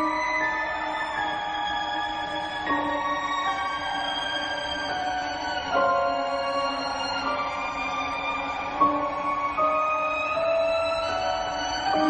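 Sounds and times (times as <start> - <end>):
tense film score sustained tones: 0.0 - 12.0.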